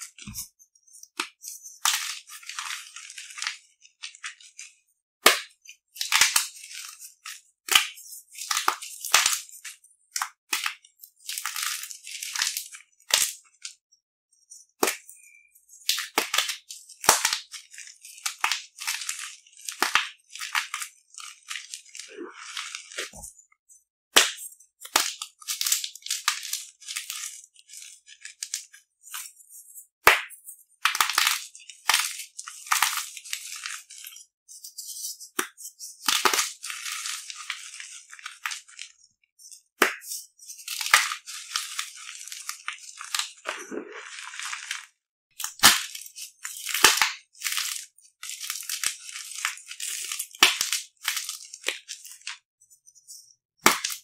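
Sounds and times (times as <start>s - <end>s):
chalk crumbling and trickling: 0.0s - 4.8s, 5.5s - 13.8s, 14.4s - 54.0s.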